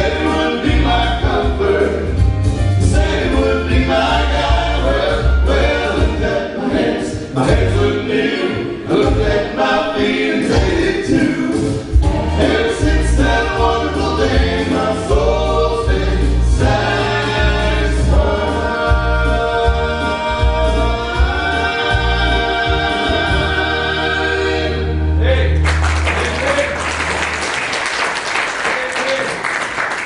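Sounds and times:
deep bass line: 0.0s - 6.4s, 7.4s - 8.0s, 10.5s - 27.2s
male vocal trio singing: 0.0s - 25.3s
instrumental accompaniment: 0.0s - 26.7s.

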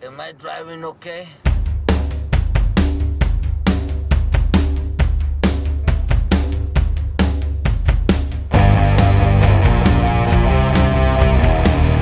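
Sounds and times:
rock drum groove: 1.4s - 12.0s
deep bass: 1.5s - 12.0s
distorted guitars: 8.5s - 12.0s.

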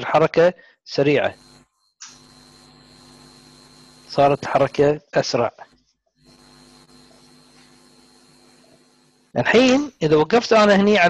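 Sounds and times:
electrical hum: 1.0s - 10.1s
thin high whine: 1.0s - 10.3s
faint hiss: 1.3s - 5.0s.

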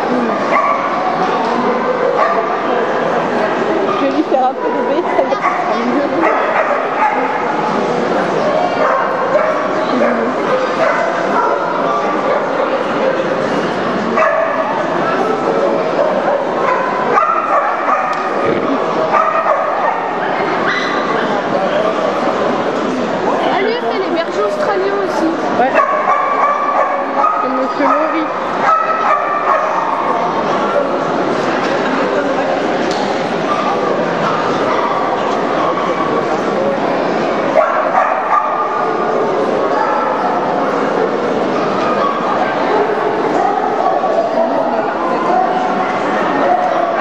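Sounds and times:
babble of voices: 0.0s - 47.0s
crowd chatter: 0.0s - 47.0s
dogs barking and yipping: 0.4s - 1.2s, 3.9s - 7.6s, 8.7s - 12.6s, 14.1s - 14.9s, 15.9s - 18.4s, 19.1s - 21.1s, 25.6s - 30.2s, 37.5s - 40.5s.

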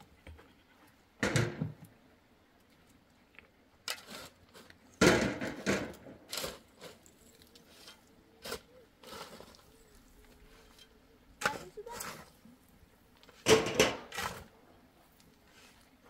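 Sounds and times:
shovel striking stony earth: 3.9s - 7.1s, 13.4s - 14.5s.

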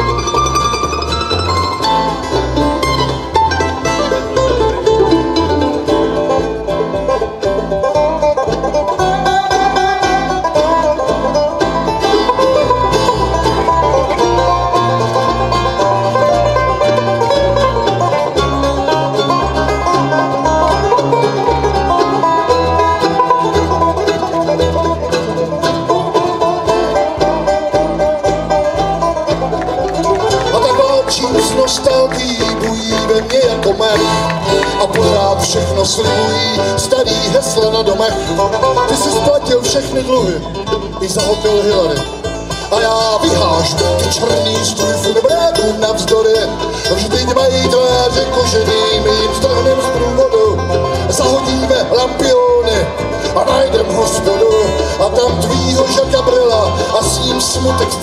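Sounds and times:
acoustic guitar: 0.0s - 58.0s
banjo: 0.0s - 58.0s
upright bass: 0.0s - 58.0s.

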